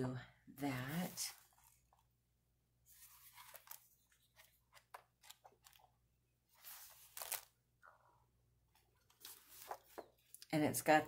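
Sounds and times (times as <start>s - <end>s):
paper pages rustling: 0.8s - 2.1s, 2.9s - 5.9s, 6.5s - 7.6s, 8.7s - 10.4s
paper crinkles: 2.9s - 5.9s, 6.6s - 7.6s, 9.0s - 10.2s.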